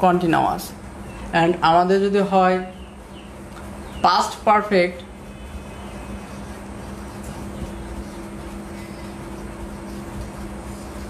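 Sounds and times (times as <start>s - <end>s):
low background hum and rumble: 0.0s - 11.0s.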